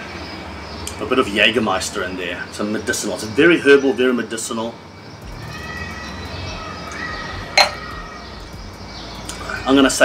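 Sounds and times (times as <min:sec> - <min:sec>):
glass clinking on wooden board: 0:07.6 - 0:07.8.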